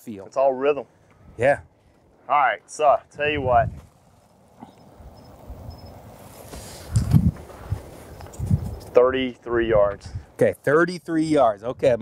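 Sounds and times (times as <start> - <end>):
rustling: 3.8 - 9.0.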